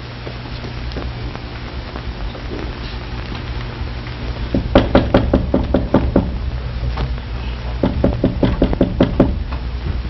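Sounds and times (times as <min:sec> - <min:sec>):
knocking on wooden door: 0:04.5 - 0:06.4, 0:07.8 - 0:09.4.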